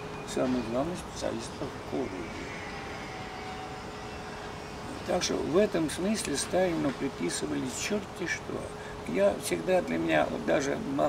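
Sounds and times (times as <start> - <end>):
distant vehicle hum: 0.0 - 11.0
faint tone falling in pitch: 1.4 - 5.6.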